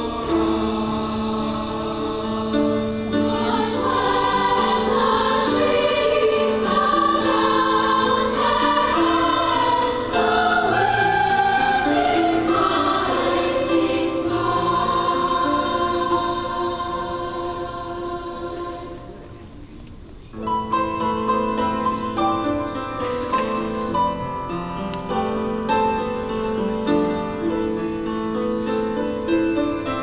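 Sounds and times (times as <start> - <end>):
youth choir singing: 0.0 - 19.4.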